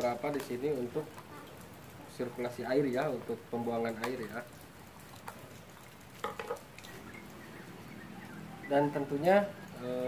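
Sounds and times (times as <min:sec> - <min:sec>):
plastic cups clicking and crinkling: 0:06.2 - 0:07.0.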